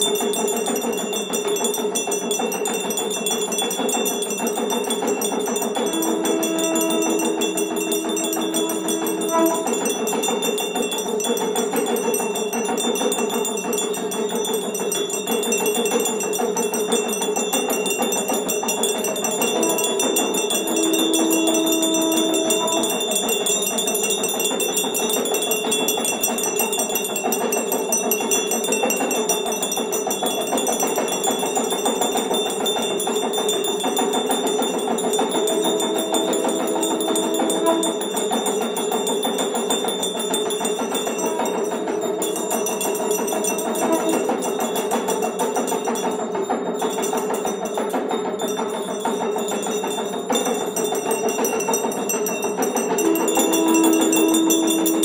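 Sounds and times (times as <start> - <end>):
bells ringing rapidly: 0.0 - 55.0
long low held note: 5.9 - 10.3, 19.6 - 23.4, 53.0 - 55.0.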